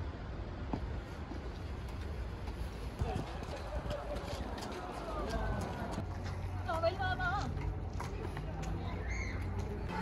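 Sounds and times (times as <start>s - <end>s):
footsteps on pavement: 0.6s - 10.0s.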